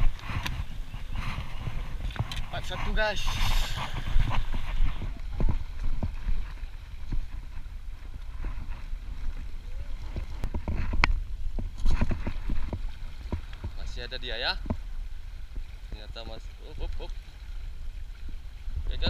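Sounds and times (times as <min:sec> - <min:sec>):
sea water washing on rocks: 0:00.0 - 0:19.0
wind rumble on microphone: 0:00.0 - 0:19.0.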